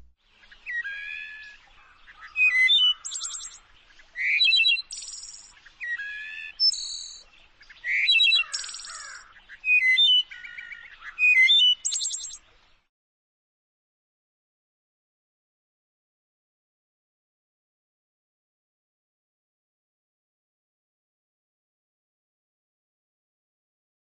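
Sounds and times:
songbird singing: 0:00.0 - 0:12.9
high buzzy bird trills: 0:00.7 - 0:07.3, 0:08.3 - 0:09.3, 0:10.2 - 0:12.4.

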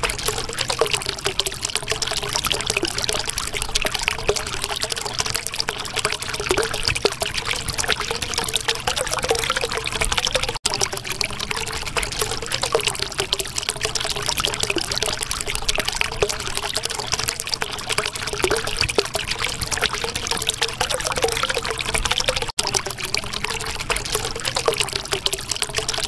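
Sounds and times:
water trickling and bubbling: 0:00.0 - 0:26.0.

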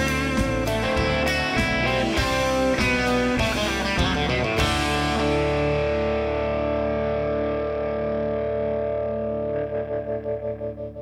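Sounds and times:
electric guitar chord with tremolo: 0:00.0 - 0:11.0.

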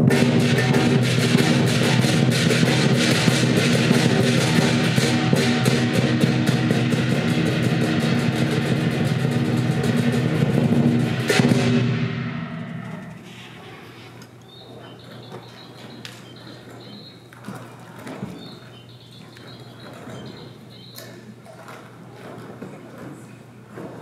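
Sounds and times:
clashing cymbals: 0:00.0 - 0:13.6
drum beaten rapidly: 0:00.0 - 0:13.6, 0:14.4 - 0:17.3, 0:18.4 - 0:21.0.

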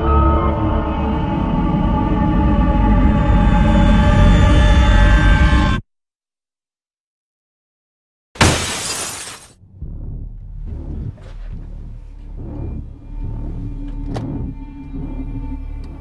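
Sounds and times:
dark background music: 0:00.0 - 0:05.8, 0:09.6 - 0:16.0
glass shattering: 0:08.4 - 0:09.6.

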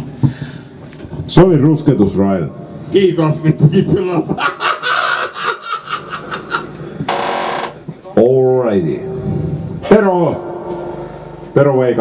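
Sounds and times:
people talking and laughing: 0:03.2 - 0:07.1.

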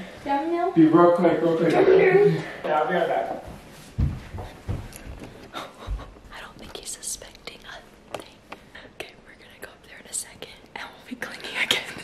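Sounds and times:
woman whispering: 0:06.3 - 0:12.0.

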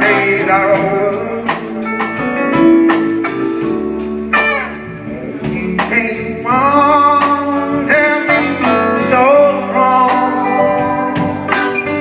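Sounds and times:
instrumental band music with guitar: 0:00.0 - 0:12.0.

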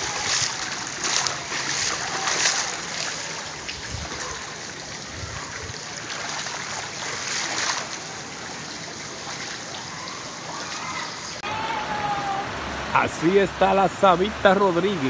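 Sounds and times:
water running over pavement: 0:00.0 - 0:11.4
loud water splashes: 0:00.0 - 0:13.7.

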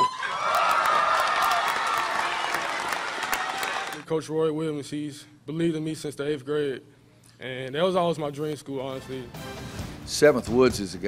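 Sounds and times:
people applauding: 0:00.0 - 0:04.0.

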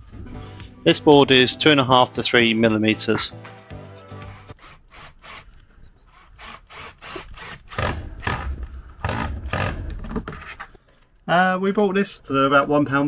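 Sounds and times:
drill driving screw into wood: 0:04.2 - 0:09.9.

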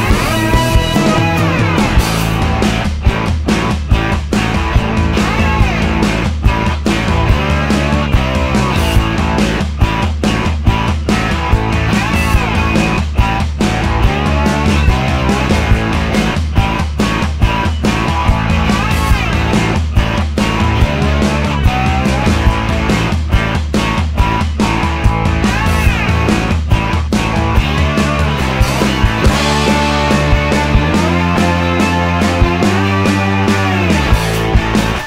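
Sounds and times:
pop backing track with beat: 0:00.0 - 0:35.0.

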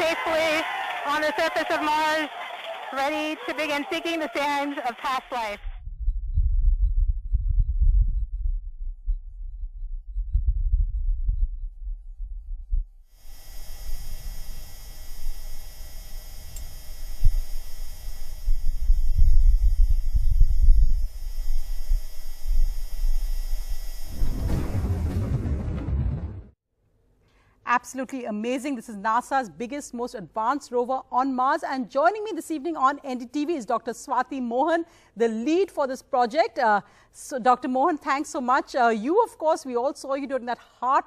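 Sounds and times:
wind rumble: 0:05.6 - 0:13.0, 0:17.3 - 0:26.5
steady hiss: 0:13.1 - 0:24.6.

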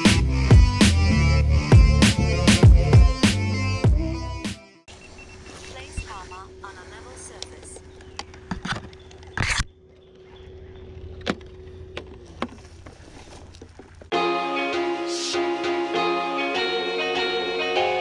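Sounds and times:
background music: 0:00.0 - 0:04.9, 0:14.1 - 0:18.0
steady low hum: 0:04.9 - 0:13.2.

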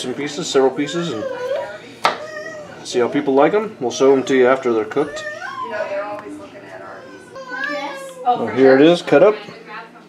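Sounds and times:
people talking: 0:00.0 - 0:10.0
child's voice: 0:07.4 - 0:08.8.

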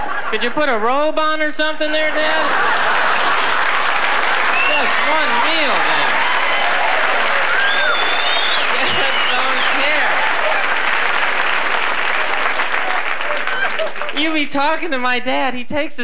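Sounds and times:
audience laughing: 0:00.0 - 0:00.8, 0:02.0 - 0:14.4
audience applauding: 0:02.5 - 0:14.5
whoops: 0:06.1 - 0:09.2.

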